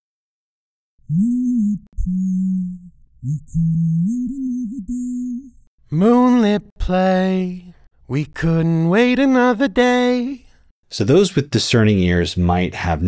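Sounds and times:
person singing: 1.1 - 10.4.

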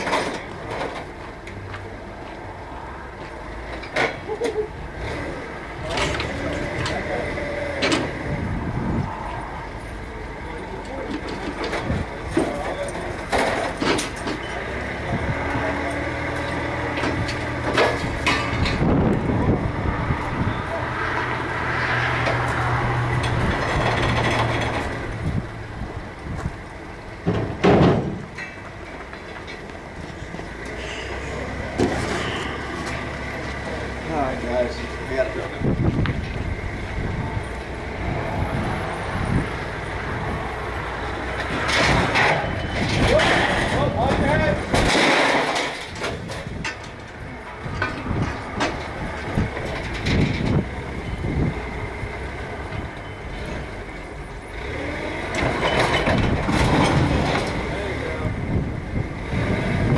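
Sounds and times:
faint voices: 4.2 - 18.2, 30.2 - 41.4, 57.2 - 59.1
loud metallic clank: 41.5 - 46.9.

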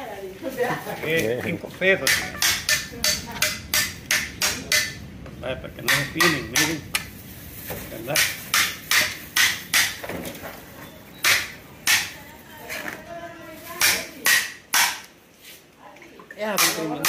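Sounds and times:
hammer knocking on knife: 2.0 - 5.0.

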